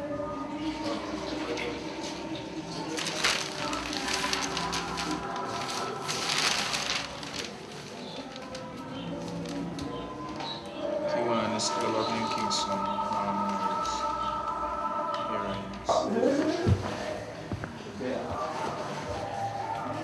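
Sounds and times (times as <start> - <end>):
background music: 0.0 - 20.0
newspaper pages rustling: 2.7 - 10.6.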